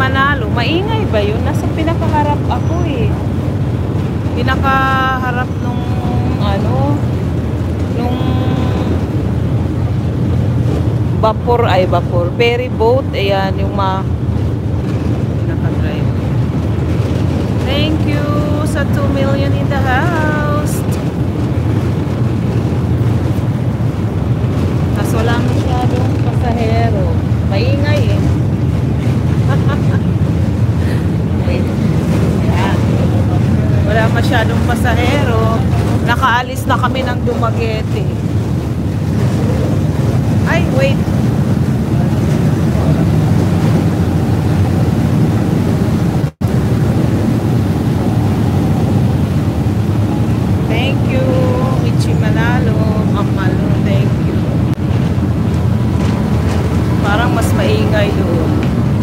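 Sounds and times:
ferry engines droning: 0.0 - 59.0
wind buffeting microphone: 0.0 - 59.0
faint voices: 4.2 - 9.4, 38.9 - 44.7.

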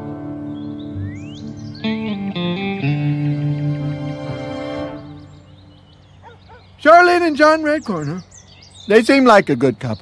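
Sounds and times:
soft guitar music: 0.0 - 5.6
faint outdoor ambience: 0.0 - 10.0
small bird chirps: 0.5 - 2.2, 5.1 - 10.0
man speaking: 6.8 - 8.3, 8.9 - 10.0.

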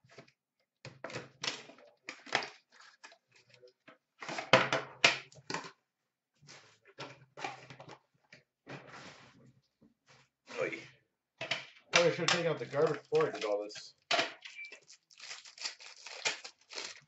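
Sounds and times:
packaging rustling and scraping: 14.8 - 17.0.

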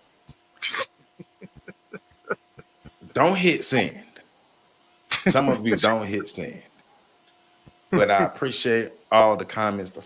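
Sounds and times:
man's stifled laughter: 0.6 - 3.1, 5.1 - 6.2.

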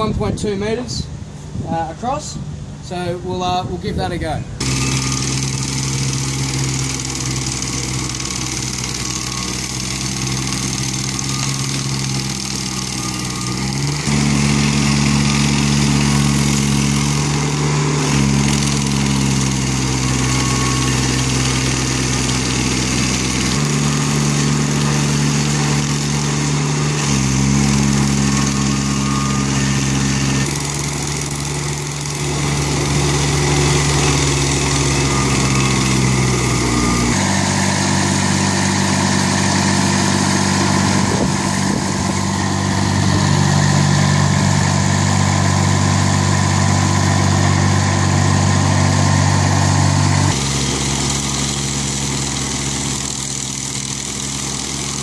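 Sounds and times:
stump grinder grinding wood: 4.6 - 55.0.

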